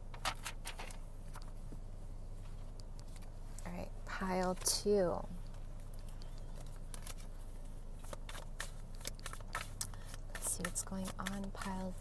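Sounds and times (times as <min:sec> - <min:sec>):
steady low hum: 0:00.0 - 0:12.0
cards clicking and snapping: 0:08.0 - 0:11.9.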